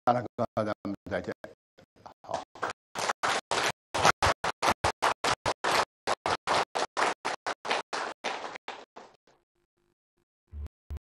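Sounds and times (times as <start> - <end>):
audience applauding: 2.3 - 9.2.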